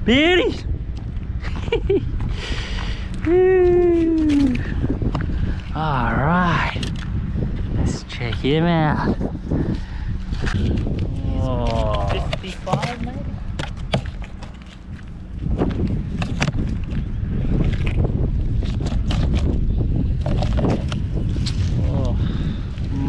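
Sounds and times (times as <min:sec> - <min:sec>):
wind buffeting the microphone: 0:00.0 - 0:23.0.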